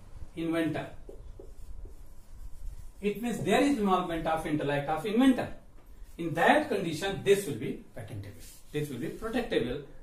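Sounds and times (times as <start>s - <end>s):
marker pen writing on whiteboard: 0.7s - 4.1s.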